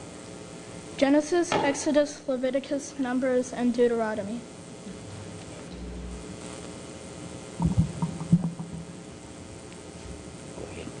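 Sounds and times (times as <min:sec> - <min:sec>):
low steady hum: 0:00.0 - 0:11.0
microphone handling thumps: 0:07.6 - 0:09.0.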